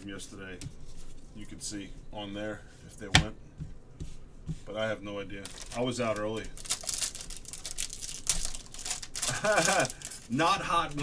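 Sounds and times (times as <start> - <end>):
foil wrapper crinkling: 5.4 - 10.5
person laughing: 9.2 - 10.2.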